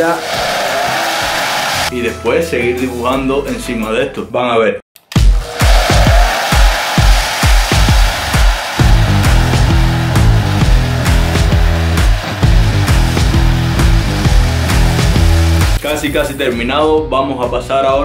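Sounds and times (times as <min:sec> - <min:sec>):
hair dryer blowing: 0:00.0 - 0:01.9, 0:05.2 - 0:15.8
music with heavy beat: 0:05.2 - 0:16.3
deep bass line: 0:07.7 - 0:16.4.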